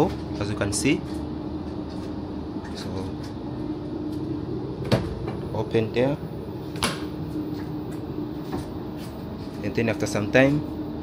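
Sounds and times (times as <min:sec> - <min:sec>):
train carriage hum: 0:00.0 - 0:11.0.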